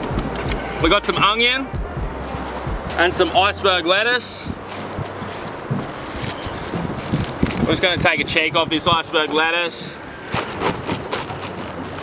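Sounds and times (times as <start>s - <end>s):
knife crunching through lettuce: 10.3s - 12.0s.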